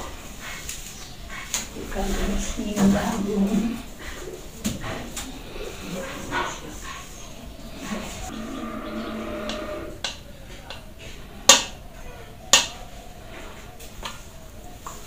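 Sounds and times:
drawn-out animal call: 2.1 - 10.2.

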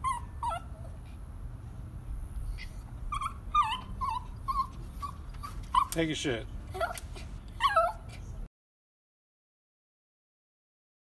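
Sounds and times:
dog whimpering: 0.0 - 1.0, 3.1 - 6.0, 6.7 - 8.3.

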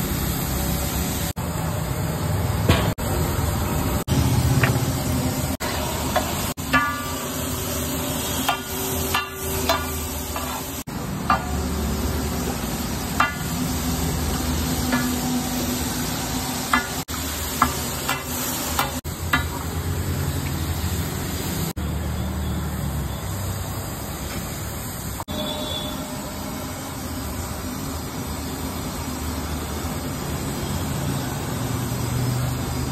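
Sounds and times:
food sizzling: 0.0 - 22.2
metal spatula scraping griddle: 8.5 - 11.5.

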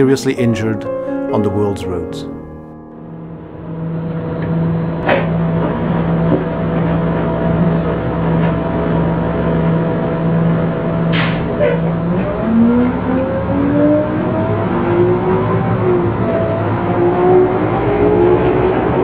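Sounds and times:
rising sliding tones: 0.8 - 5.0
cartoon bus engine drone: 2.8 - 19.0.

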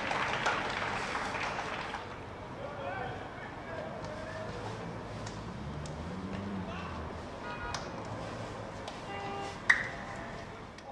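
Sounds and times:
sharp hand clap: 0.0 - 2.2
faint outdoor background noise: 0.0 - 10.9.

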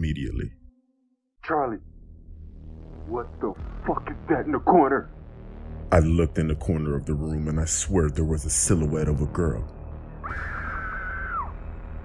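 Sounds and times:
low droning music: 0.0 - 12.0
high-pitched shriek: 10.2 - 11.7.

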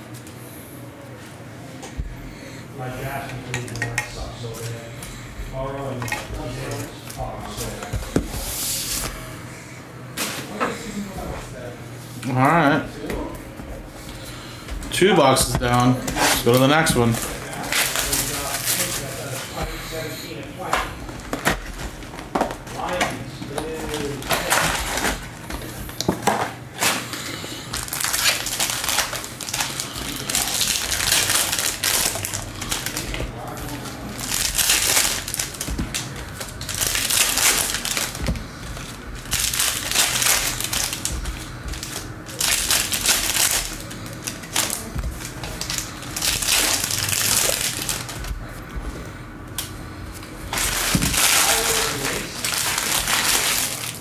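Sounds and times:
plastic wrappers tearing and crinkling: 15.6 - 48.4, 50.5 - 54.0.

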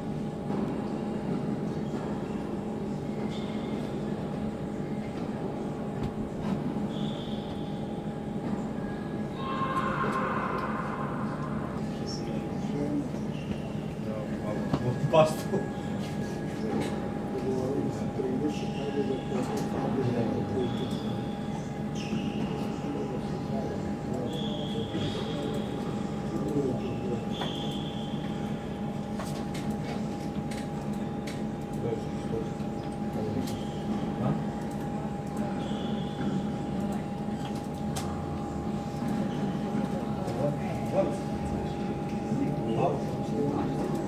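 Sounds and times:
steady hall hum: 0.0 - 44.0.

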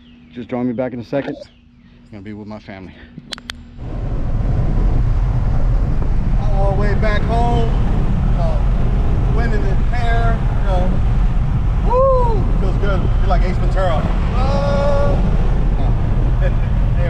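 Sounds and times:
road and engine rumble in truck cab: 3.8 - 17.0.

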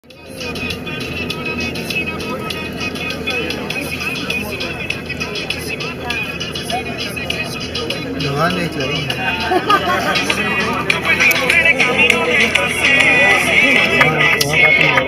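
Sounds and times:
background music: 0.0 - 15.0
background voices: 0.0 - 15.0
bus engine running: 0.0 - 15.0.

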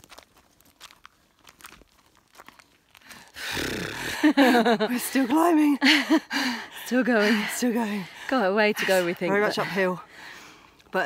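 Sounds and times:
footsteps on gravel: 0.0 - 3.5.

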